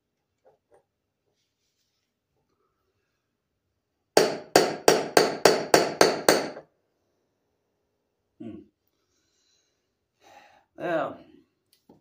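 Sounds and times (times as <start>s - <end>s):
hammer blows ringing on metal: 4.2s - 6.6s.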